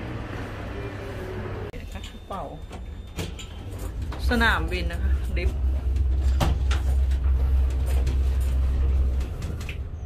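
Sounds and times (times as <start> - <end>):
lift rumbling: 0.0 - 10.0.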